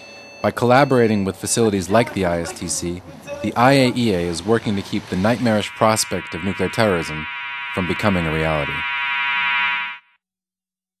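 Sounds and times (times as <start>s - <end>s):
security alarm buzzing: 5.2s - 10.1s.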